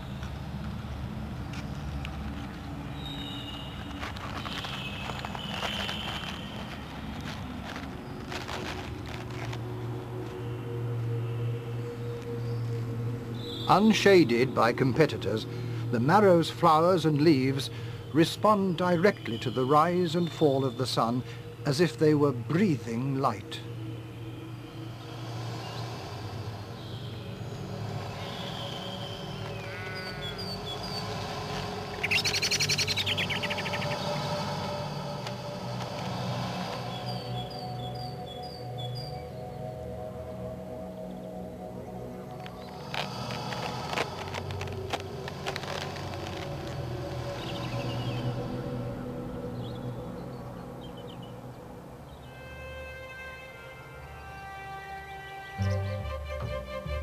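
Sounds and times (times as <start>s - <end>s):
soft background music: 0.0s - 57.0s
birds chirping: 1.3s - 53.4s.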